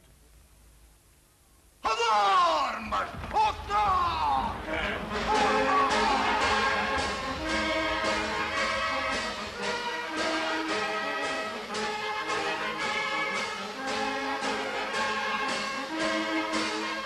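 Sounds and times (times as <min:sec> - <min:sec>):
brass and wind band playing: 0:04.5 - 0:17.0.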